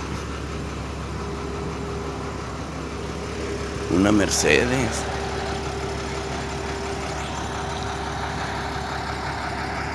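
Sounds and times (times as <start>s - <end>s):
truck engine idling: 0.0s - 9.9s.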